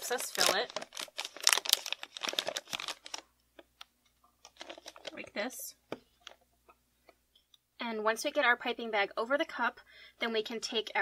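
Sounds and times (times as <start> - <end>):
plastic bag crinkling: 0.0 - 3.2, 4.4 - 5.4.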